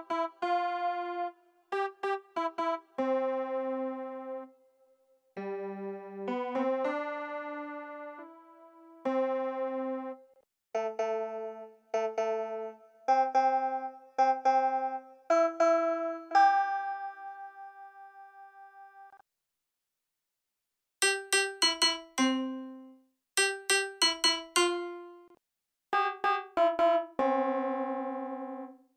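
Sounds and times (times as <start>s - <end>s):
piano chords: 21.0s - 22.9s.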